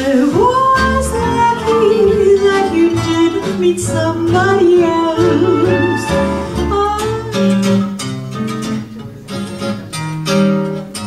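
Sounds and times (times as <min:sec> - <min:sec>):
woman singing: 0:00.0 - 0:07.6
acoustic guitar: 0:00.0 - 0:11.0.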